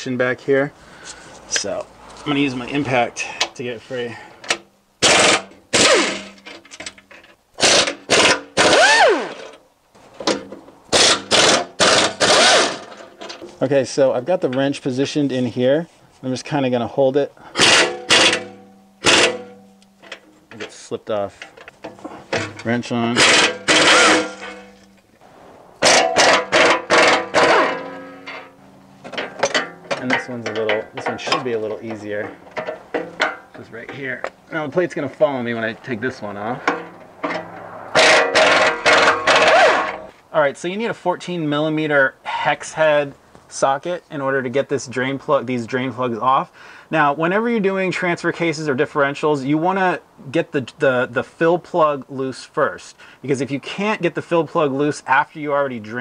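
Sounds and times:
pneumatic impact wrench hammering: 5.0 - 6.7, 7.6 - 9.6, 10.2 - 13.1, 17.5 - 19.6, 23.2 - 24.7, 25.8 - 28.4, 38.0 - 40.1.

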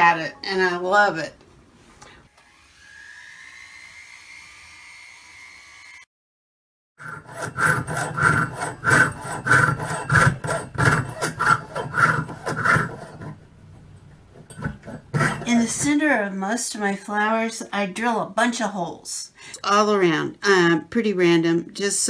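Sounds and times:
saw cutting sheet metal: 7.0 - 13.4, 14.5 - 16.0.

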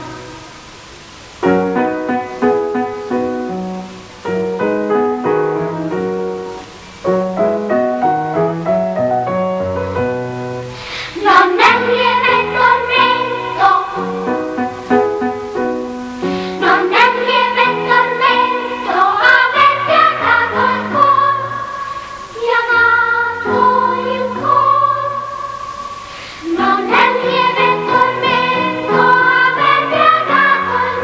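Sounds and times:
girls' choir singing: 11.1 - 15.0, 16.5 - 31.0.

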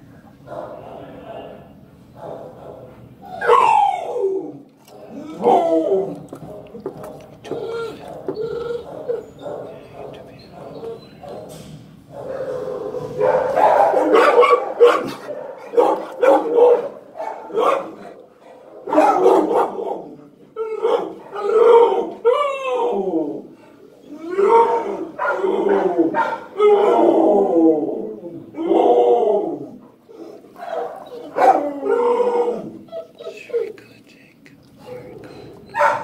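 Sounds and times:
dog crying and calling: 3.2 - 11.5, 18.8 - 33.8, 34.8 - 36.0.

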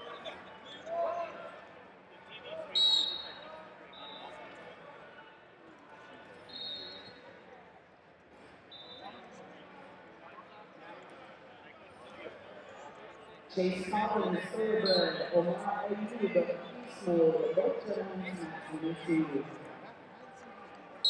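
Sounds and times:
murmur of voices in a hall: 0.0 - 21.0
referee whistle blast: 2.8 - 3.4.

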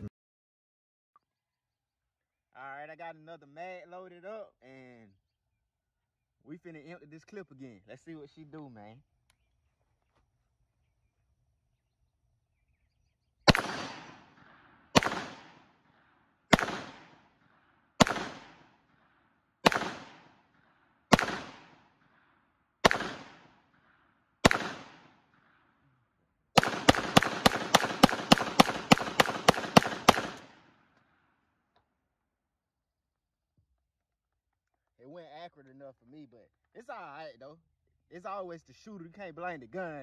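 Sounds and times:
pistol shots: 13.5 - 25.6, 26.6 - 30.8.

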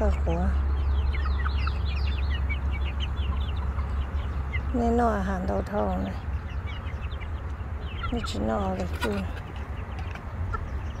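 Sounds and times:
chicks peeping and clucking: 0.0 - 11.0
steady low rumble: 0.0 - 11.0.

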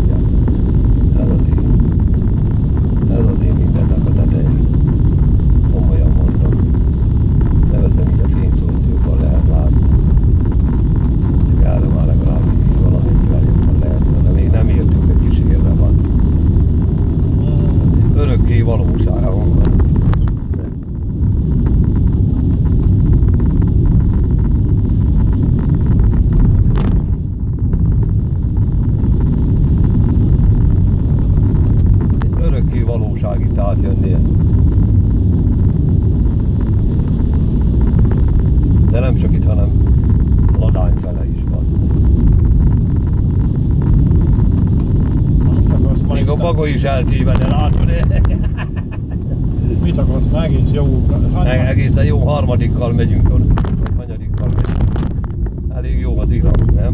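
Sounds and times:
car engine and tyres rumbling: 0.0 - 56.9.

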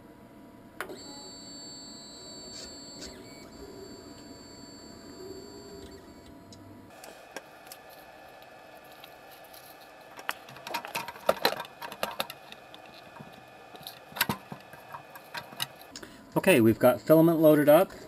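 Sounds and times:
stepper motor whine: 0.8 - 15.9.

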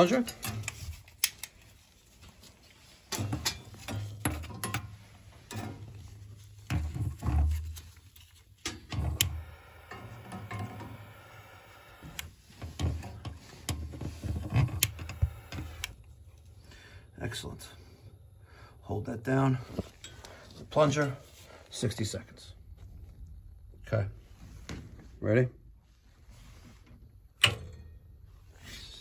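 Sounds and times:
boiler pilot flame igniting: 3.0 - 21.8.

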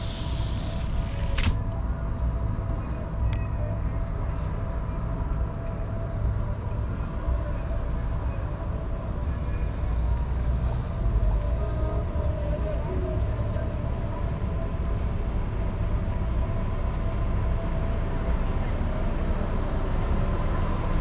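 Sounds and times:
car engine and tyre rumble: 0.0 - 21.0
faint steady whine: 0.0 - 21.0.

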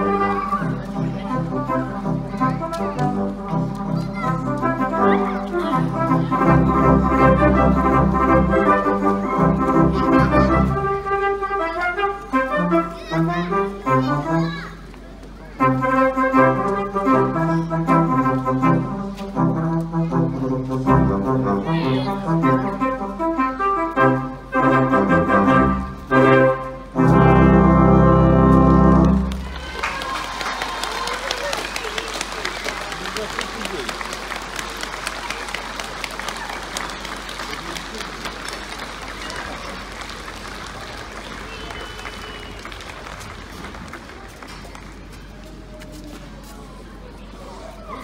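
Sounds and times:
horn ensemble playing melody: 0.0 - 14.5, 15.5 - 29.6
audience applause: 28.7 - 45.2.

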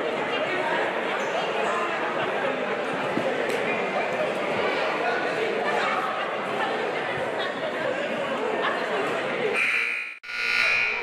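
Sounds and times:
crowd voices: 0.0 - 11.0
scoreboard buzzer: 9.6 - 11.0.

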